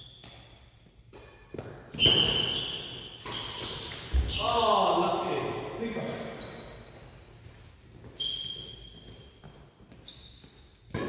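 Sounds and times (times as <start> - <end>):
trainers squeaking on court floor: 1.9 - 5.4, 6.1 - 10.9.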